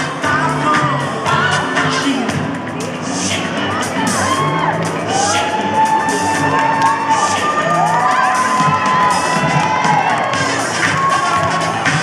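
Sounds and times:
background music: 0.0s - 12.0s
children shouting and cheering: 3.3s - 12.0s.

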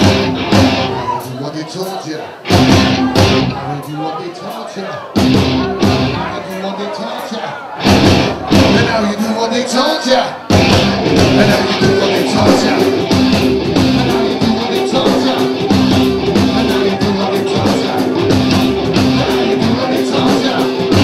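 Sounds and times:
loud full-band hits: 0.0s - 1.1s, 2.5s - 3.7s, 5.2s - 6.3s, 7.8s - 9.1s, 10.5s - 21.0s
live rock band playing: 0.0s - 1.4s, 2.4s - 4.1s, 5.0s - 6.8s, 7.4s - 21.0s.

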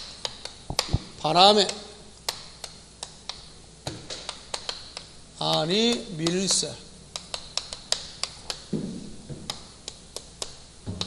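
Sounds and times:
chalk tapping and scraping on blackboard: 0.0s - 1.0s, 1.6s - 11.0s.

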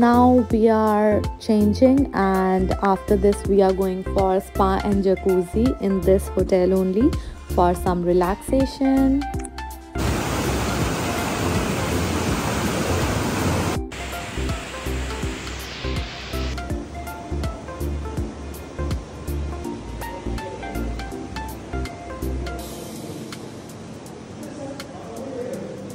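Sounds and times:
background music with steady beat: 0.0s - 25.9s
tub jets churning water: 10.0s - 21.5s.

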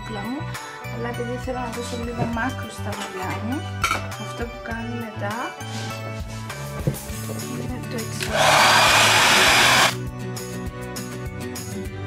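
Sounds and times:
hair dryer blowing: 8.2s - 10.0s.

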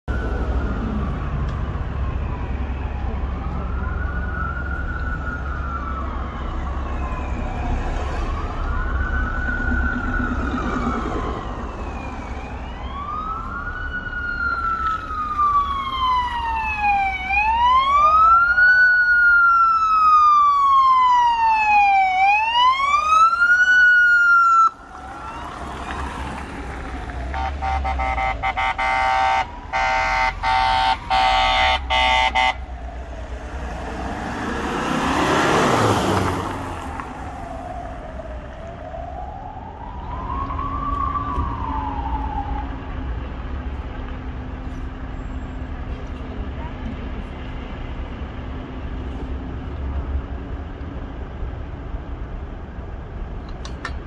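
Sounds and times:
emergency vehicle siren wailing: 0.0s - 53.0s.

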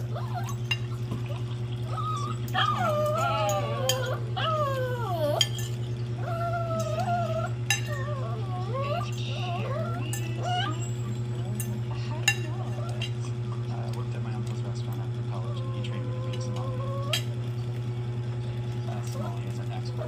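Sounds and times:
dog whining: 0.0s - 13.6s, 15.3s - 17.4s, 18.8s - 20.0s.

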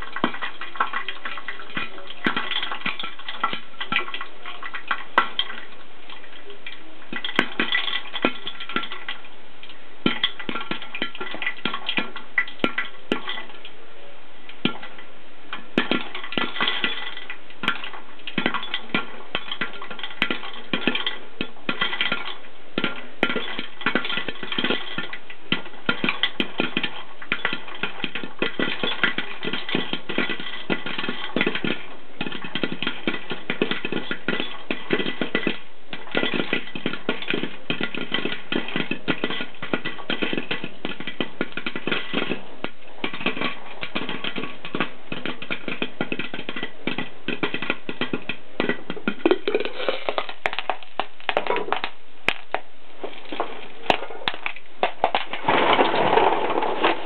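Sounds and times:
popcorn popping: 0.0s - 13.8s, 14.5s - 57.0s.

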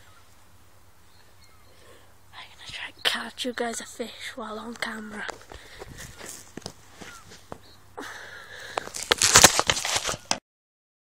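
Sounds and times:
crackling handling noise on microphone: 4.5s - 7.7s, 8.6s - 10.4s.

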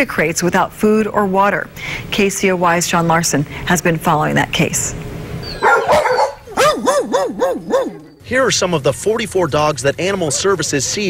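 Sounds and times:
dog howling: 5.4s - 8.2s
dogs barking: 5.4s - 8.3s.

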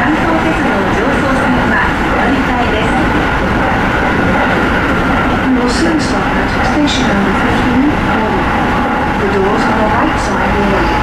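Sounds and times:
wheels rumbling on rail: 0.0s - 11.0s.

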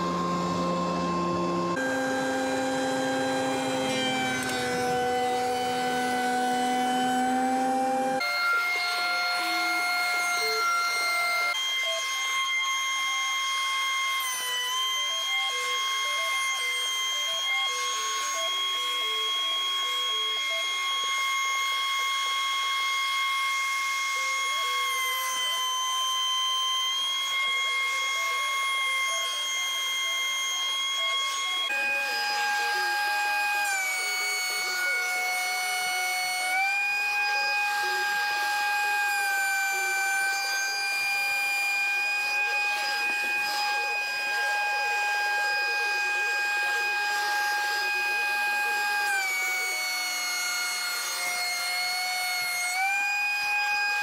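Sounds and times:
thickness planer motor whining: 0.0s - 54.0s.

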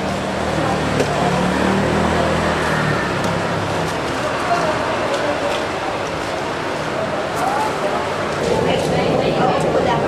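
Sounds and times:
road traffic din: 0.0s - 10.0s.

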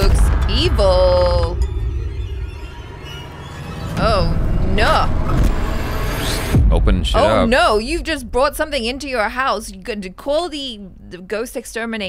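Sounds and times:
steady low rumble: 0.0s - 11.9s.

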